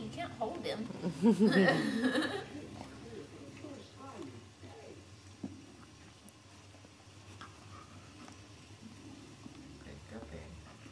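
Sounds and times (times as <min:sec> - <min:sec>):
faint scattered ticks: 0:02.7 - 0:10.9.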